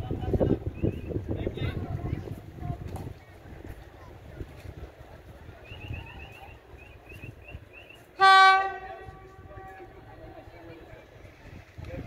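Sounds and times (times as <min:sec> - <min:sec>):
locomotive horn blast: 0:08.2 - 0:10.1.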